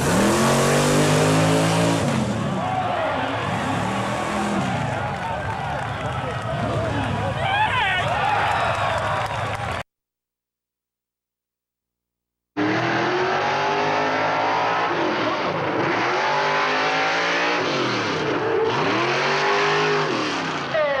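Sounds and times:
fire truck engine revving: 0.0 - 7.2, 12.6 - 20.8.

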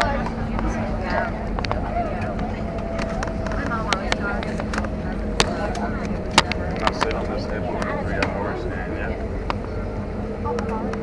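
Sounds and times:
sharp clicks and rattles: 0.0 - 8.4
low cabin rumble: 0.0 - 11.0.

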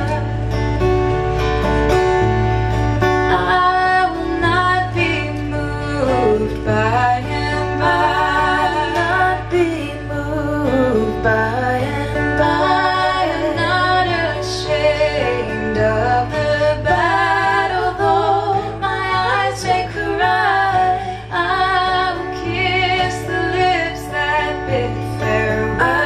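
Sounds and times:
acoustic guitar: 0.0 - 26.0
woman singing with vibrato: 3.2 - 26.0.

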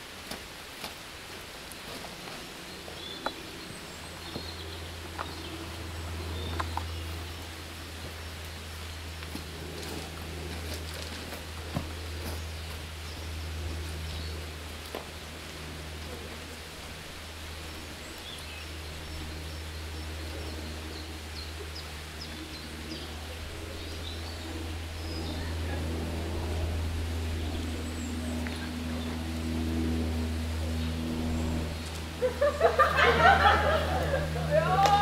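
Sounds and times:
faint steady hum: 0.0 - 35.0
low rumble: 2.5 - 35.0.

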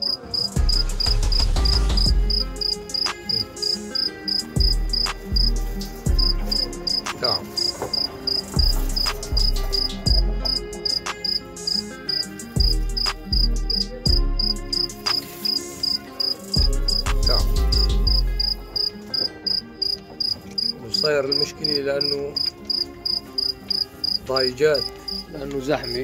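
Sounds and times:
cricket chirping: 0.0 - 5.5, 6.2 - 13.1, 14.4 - 17.1, 17.8 - 26.0
low thumps: 7.8 - 11.2.

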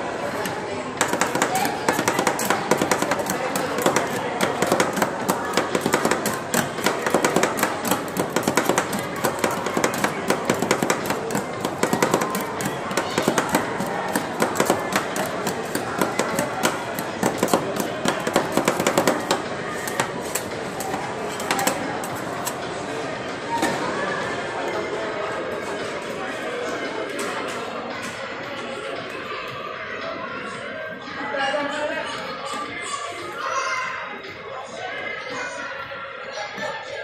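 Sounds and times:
metal spatulas striking steel plate: 1.0 - 21.8.

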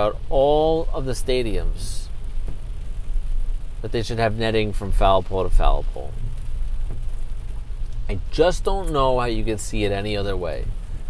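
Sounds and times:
car road and engine rumble: 0.0 - 11.0
tyres hissing on wet road: 0.0 - 11.0.

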